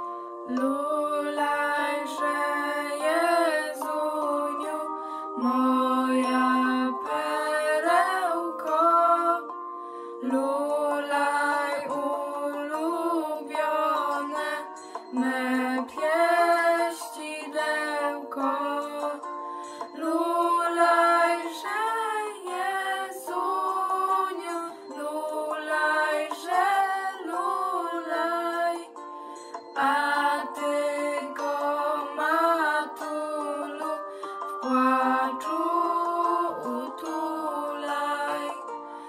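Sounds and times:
girls singing a carol: 0:00.5 - 0:09.5, 0:10.2 - 0:19.3, 0:19.9 - 0:29.0, 0:29.8 - 0:38.7.

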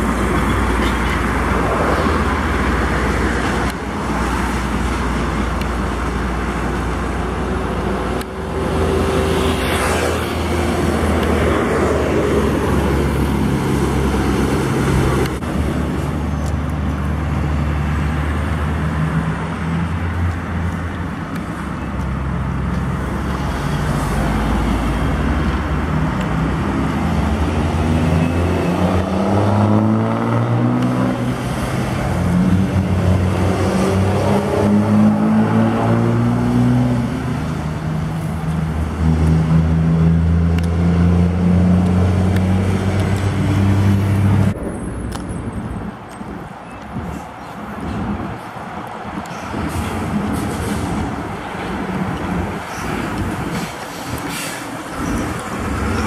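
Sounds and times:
diesel truck engines: 0:00.0 - 0:56.0
road noise: 0:00.0 - 0:56.0.

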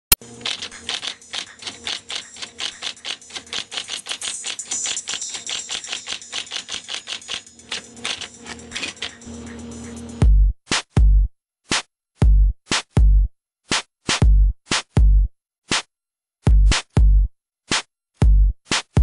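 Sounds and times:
typewriter keystrokes: 0:00.2 - 0:09.3.

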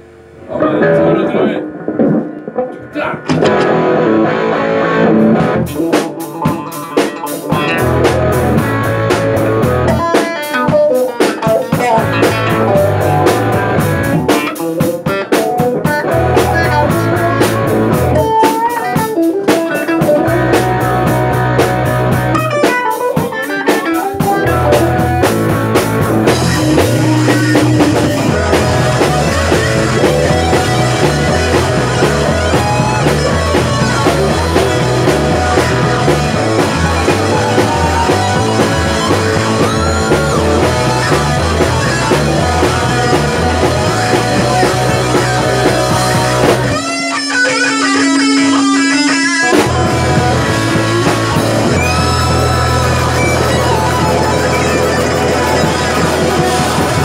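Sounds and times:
bass line: 0:00.0 - 0:06.0, 0:07.4 - 0:10.7, 0:11.7 - 0:14.5, 0:15.8 - 0:18.5, 0:19.9 - 0:23.3, 0:23.9 - 0:57.0
electric guitar: 0:00.0 - 0:57.0
drum kit: 0:00.5 - 0:57.0.

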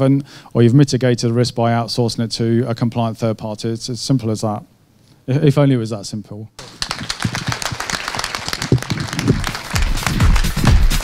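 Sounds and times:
audience applauding: 0:06.6 - 0:11.0
music: 0:08.8 - 0:11.0.

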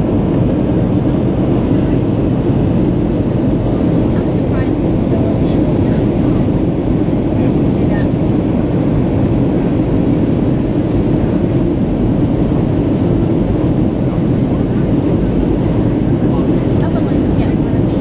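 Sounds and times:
jet airliner cabin rumble: 0:00.0 - 0:18.0.

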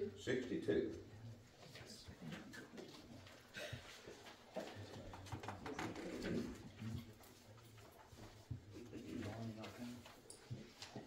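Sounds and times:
hymnal pages rustling: 0:00.9 - 0:11.0.

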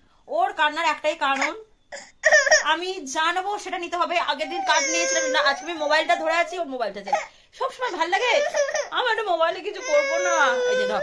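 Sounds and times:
woman speaking: 0:00.3 - 0:01.8, 0:02.5 - 0:11.0
baby crying: 0:01.4 - 0:02.8, 0:04.3 - 0:09.0, 0:09.6 - 0:11.0.

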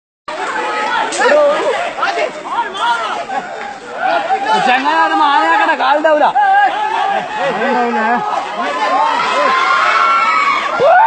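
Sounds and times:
crowd talking: 0:00.3 - 0:11.0.

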